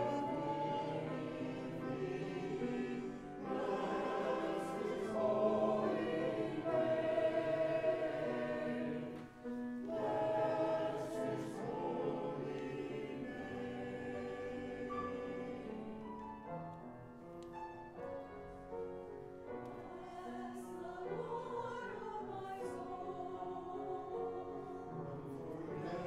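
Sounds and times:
choir singing: 0.0s - 16.3s, 19.7s - 26.0s.

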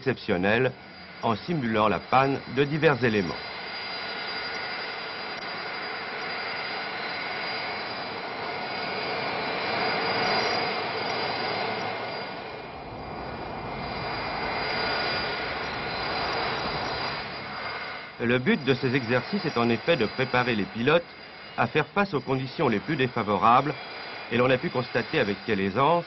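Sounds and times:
jet engine rush with whine: 0.0s - 26.0s.

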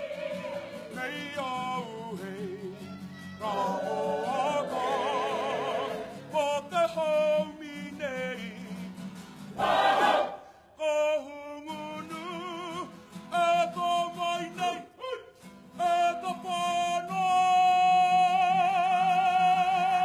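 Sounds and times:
group singing: 0.0s - 1.4s, 3.4s - 6.6s, 9.5s - 10.5s.

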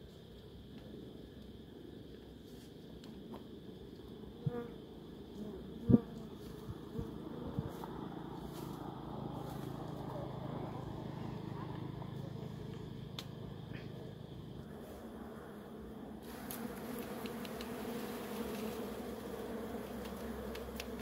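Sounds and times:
bees buzzing: 14.6s - 21.0s.

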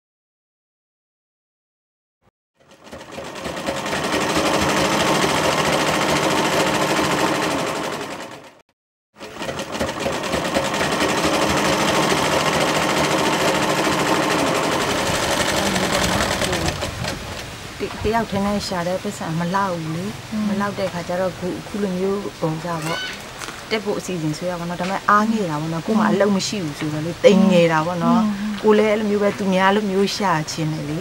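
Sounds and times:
sewing machine stitching: 2.6s - 8.6s, 9.2s - 17.3s.

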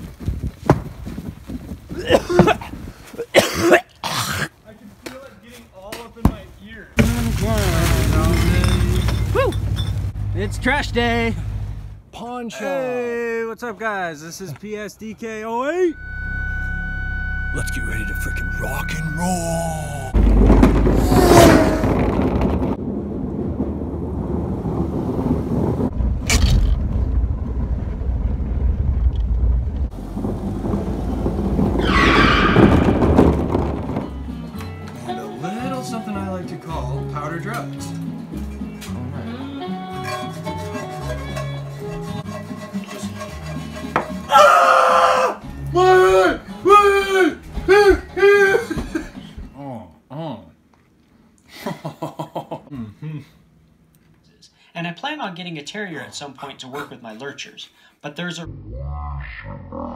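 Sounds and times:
loud pitched voice: 17.8s - 20.2s
music: 33.9s - 48.6s.

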